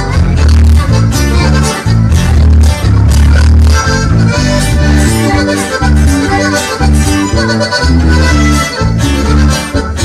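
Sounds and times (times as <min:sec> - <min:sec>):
accordion: 0:00.0 - 0:10.0
guitar: 0:00.0 - 0:10.0
heavy rhythmic bass line: 0:00.0 - 0:10.0.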